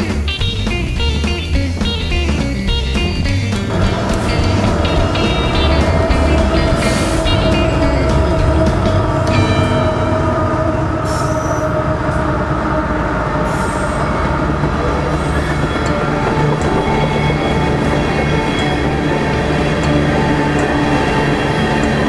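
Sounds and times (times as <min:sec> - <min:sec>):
guitar music: 0:00.0 - 0:12.6, 0:13.5 - 0:22.0
diesel locomotive passing: 0:00.0 - 0:22.0
freight cars rolling on rails: 0:00.0 - 0:22.0.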